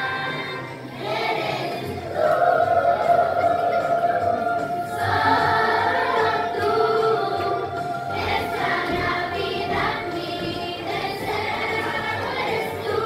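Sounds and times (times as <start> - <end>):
children's choir singing: 0.0 - 13.0.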